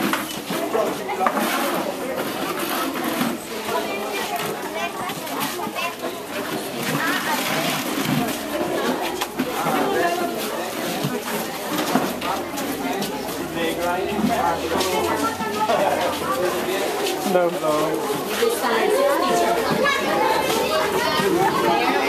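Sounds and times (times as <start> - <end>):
chatter of children and adults: 0.0 - 22.0.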